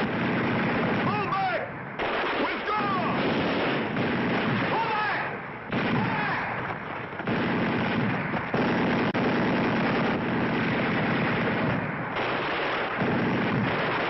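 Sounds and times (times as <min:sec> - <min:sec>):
explosions: 0:00.0 - 0:14.0
rifle and machine-gun fire: 0:00.0 - 0:14.0.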